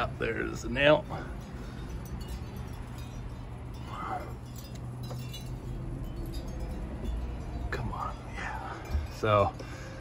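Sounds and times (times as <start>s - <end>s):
steady low rumble: 0.0s - 10.0s
metal wind chime tinkling: 0.5s - 10.0s.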